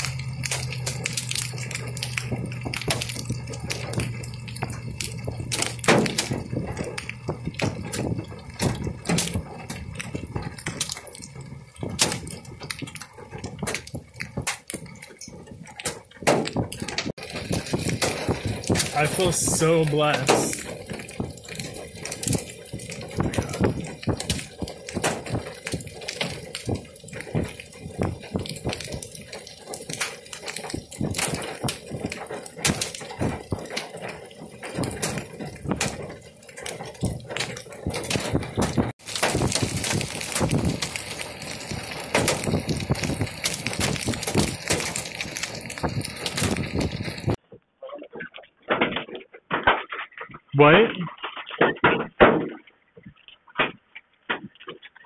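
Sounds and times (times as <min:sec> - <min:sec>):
crackle of clicks and rustling: 0:00.0 - 0:55.0
indistinct voices: 0:18.8 - 0:20.8.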